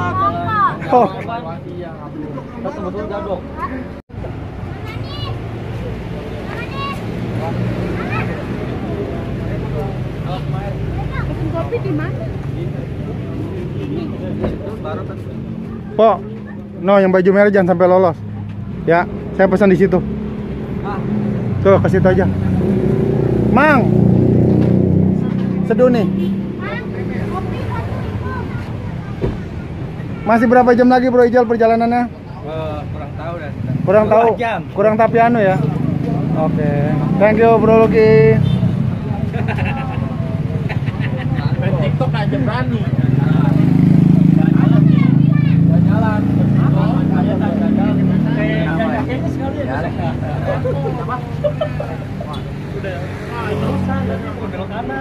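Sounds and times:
vehicle engine droning: 0.0s - 30.8s, 32.2s - 55.0s
chatter of voices: 0.0s - 55.0s
road traffic hum: 0.0s - 55.0s.

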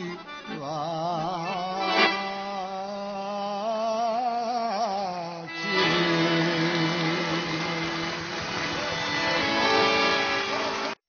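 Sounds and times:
live band holding sustained note: 0.0s - 2.9s, 5.4s - 11.0s
rushing noise: 6.6s - 11.0s.

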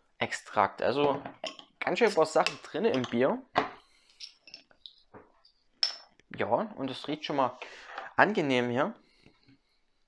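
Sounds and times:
metal clinking on table: 1.0s - 5.0s, 5.8s - 6.1s.

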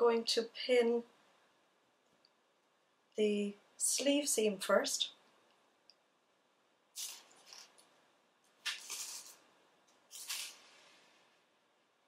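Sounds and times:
knit fabric rustling: 6.9s - 11.6s.

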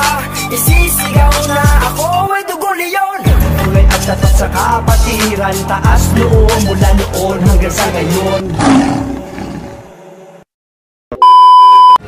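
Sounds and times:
rap song: 0.0s - 8.5s
electronic beep: 11.1s - 12.0s.

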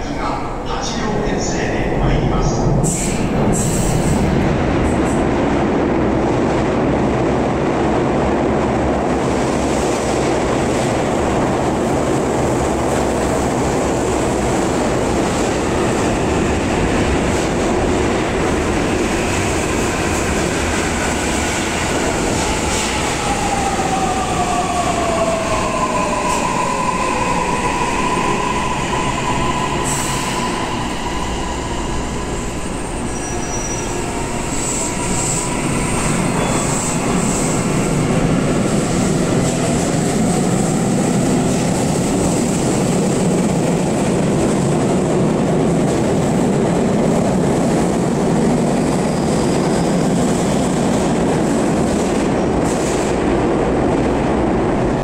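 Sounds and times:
train running noise: 0.0s - 55.0s.

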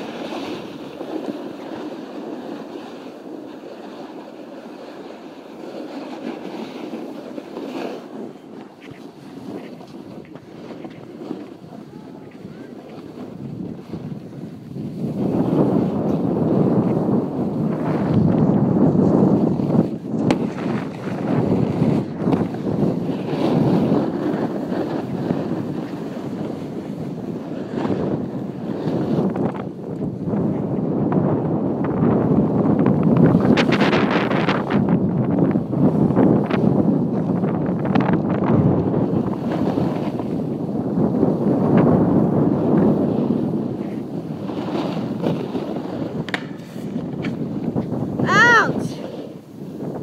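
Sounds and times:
board edge scraping snow: 0.0s - 50.0s
wind rushing over microphone: 0.0s - 50.0s.

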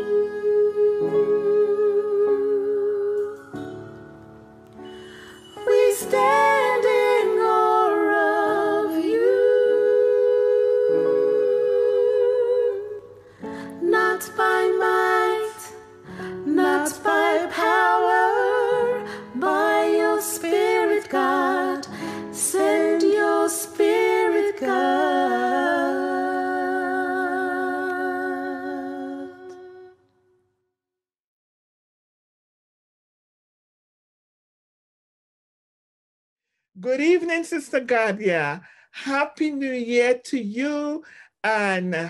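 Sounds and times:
two women singing a duet: 0.0s - 3.8s, 4.9s - 30.0s.

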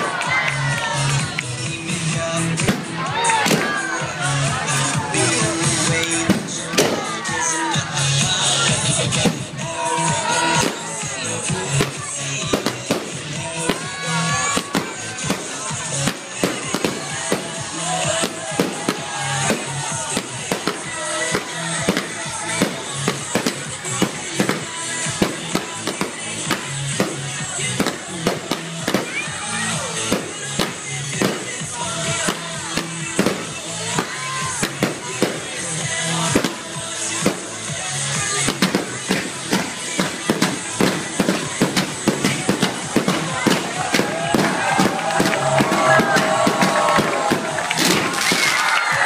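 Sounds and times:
loud music: 0.0s - 49.0s
fireworks bangs: 2.2s - 4.1s, 4.7s - 49.0s.

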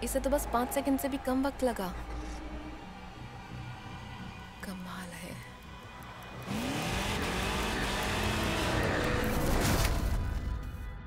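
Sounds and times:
car engine revving: 6.4s - 9.8s.

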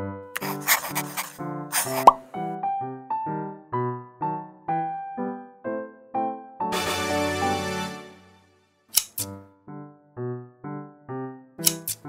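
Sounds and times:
bouncy keyboard music: 6.7s - 8.3s.

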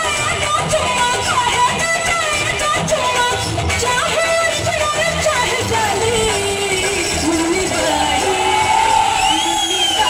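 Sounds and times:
loud stage-show music: 0.0s - 10.0s.

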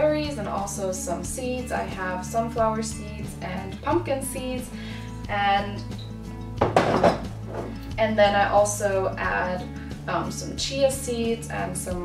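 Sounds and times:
acoustic guitar music: 2.5s - 10.2s.

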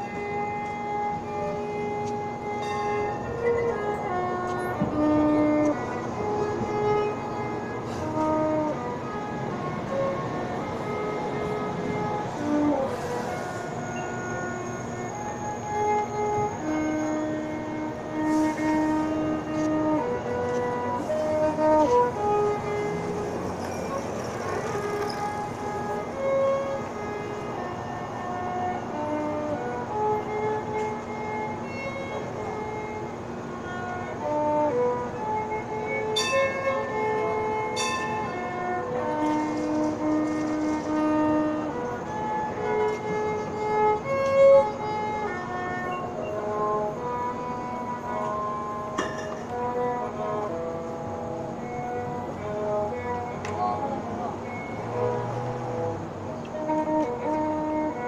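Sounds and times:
violin playing long notes: 0.0s - 58.0s.

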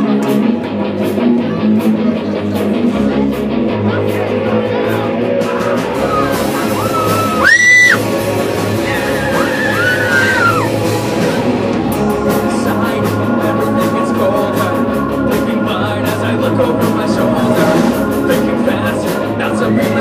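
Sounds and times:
bass guitar: 0.0s - 20.0s
electric guitars: 0.0s - 20.0s
drum kit: 4.9s - 20.0s
harmonica wailing: 6.1s - 8.0s.

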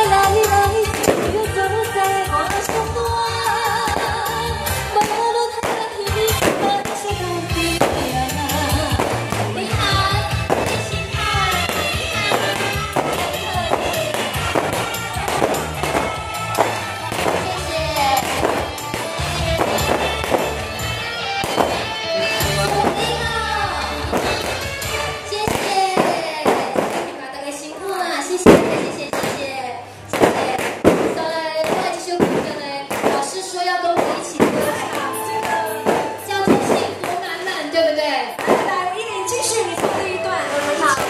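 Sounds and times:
woman singing into microphone: 0.0s - 14.1s, 31.3s - 41.0s
backing track with steady beat: 0.0s - 27.0s.

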